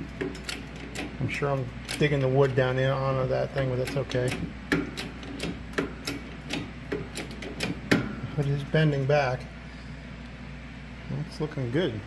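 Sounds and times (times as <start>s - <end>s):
metal and wood clicking under press: 0.0s - 2.8s, 3.5s - 8.2s.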